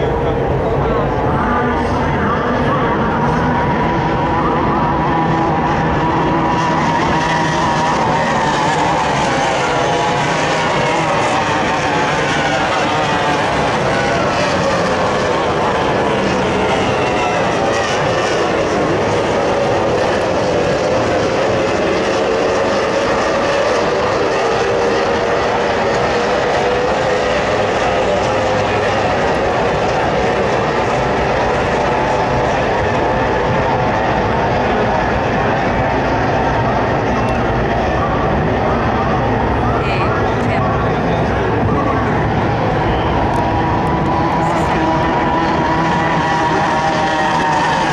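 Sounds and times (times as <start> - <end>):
powerboat engines at high revs: 0.0 - 47.9.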